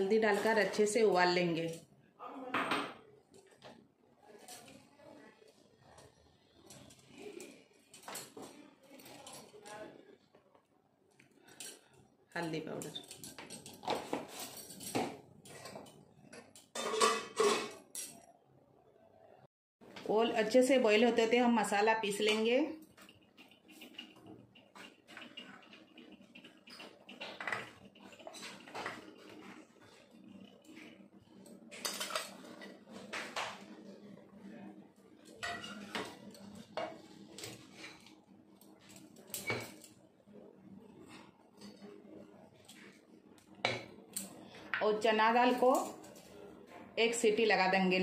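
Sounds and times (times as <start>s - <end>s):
steel clinking and scraping on steel: 16.6s - 18.3s, 22.8s - 32.9s, 35.2s - 38.1s.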